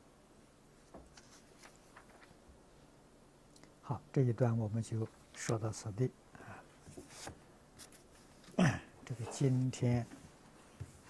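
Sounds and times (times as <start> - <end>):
paper rustling: 0.8 - 2.4, 6.9 - 8.6
man speaking: 3.8 - 6.2, 8.6 - 10.2.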